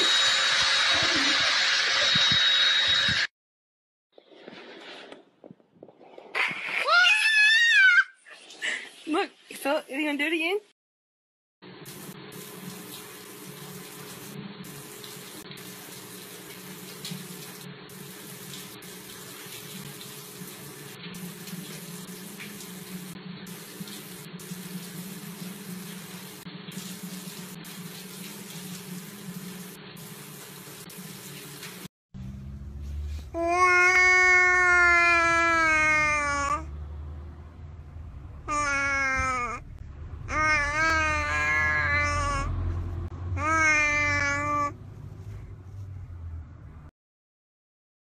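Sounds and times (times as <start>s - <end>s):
young child screaming: 6.8s - 8.2s, 33.4s - 36.7s, 40.3s - 42.5s, 43.4s - 44.7s
water running into plastic tub: 11.9s - 31.9s
shorter lower cries: 38.5s - 42.7s.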